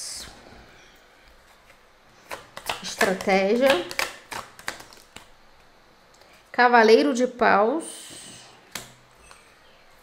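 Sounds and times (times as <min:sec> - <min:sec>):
cards clicking and snapping: 0:02.3 - 0:05.3.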